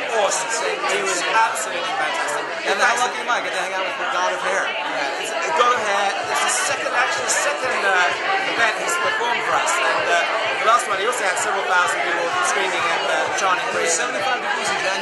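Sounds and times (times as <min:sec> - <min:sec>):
people talking at once: 0:00.0 - 0:15.0.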